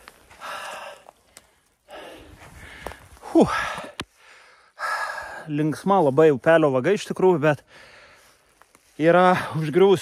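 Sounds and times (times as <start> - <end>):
man breathing out hard: 0.3 - 1.2, 1.8 - 5.5, 7.7 - 8.4.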